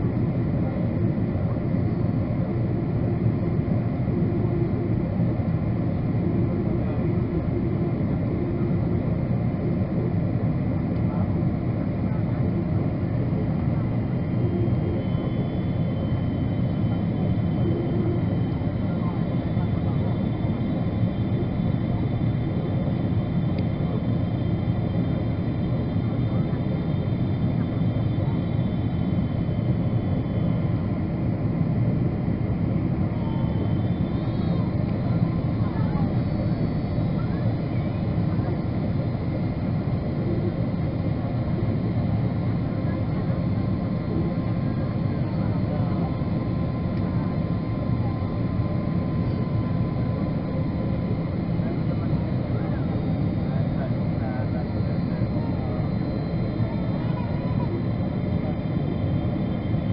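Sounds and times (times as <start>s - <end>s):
faint high whining tones: 0.0s - 59.9s
jet engine and airflow rush: 0.0s - 59.9s.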